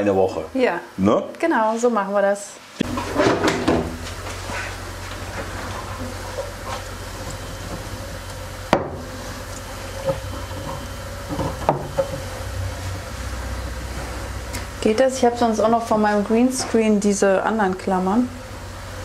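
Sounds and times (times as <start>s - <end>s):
steady low hum: 0.0s - 1.2s, 2.8s - 19.0s.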